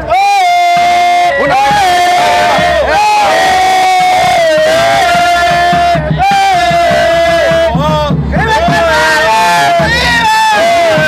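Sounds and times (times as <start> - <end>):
men shouting war cry: 0.0 - 11.0.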